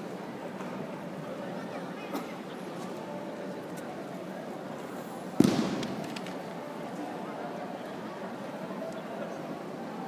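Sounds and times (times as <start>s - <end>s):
faint murmur of hall: 0.0s - 10.0s.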